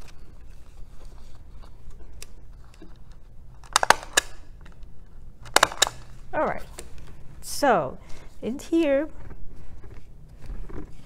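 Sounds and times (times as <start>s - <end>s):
stapler crunching click: 3.6s - 4.4s, 5.4s - 6.1s.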